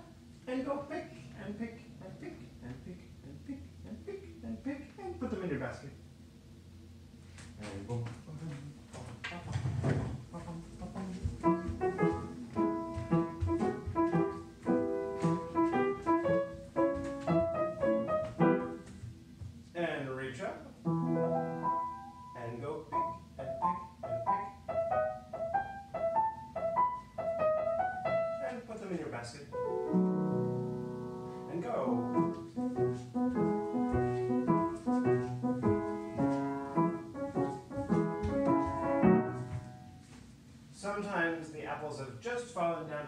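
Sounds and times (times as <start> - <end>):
upright piano playing: 10.2 - 19.4, 20.7 - 40.1.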